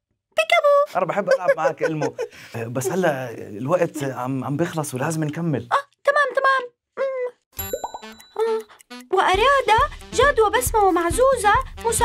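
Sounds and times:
cartoon plop: 0:07.6 - 0:08.2
bell-like ding: 0:07.6 - 0:08.4.

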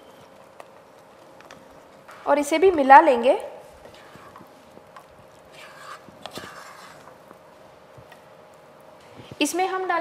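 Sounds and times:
spatula scraping a pan: 0:05.5 - 0:07.2.

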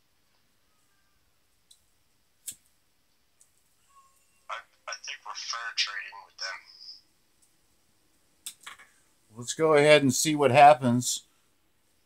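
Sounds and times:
person speaking: 0:04.5 - 0:07.0.

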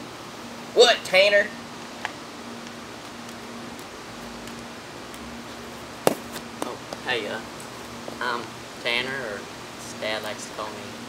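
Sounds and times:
background hiss: 0:00.0 - 0:11.0
sharp knock: 0:06.1 - 0:06.4.

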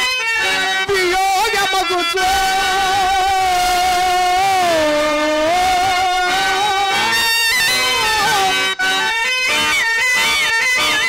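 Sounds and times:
man singing long nasal note: 0:00.9 - 0:08.8.

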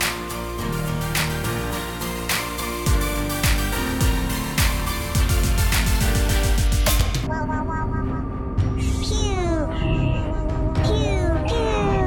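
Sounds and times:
sci-fi electronic music: 0:00.0 - 0:12.0.

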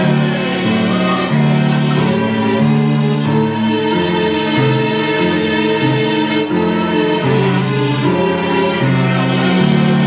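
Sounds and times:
sustained keyboard chords: 0:00.0 - 0:10.0.

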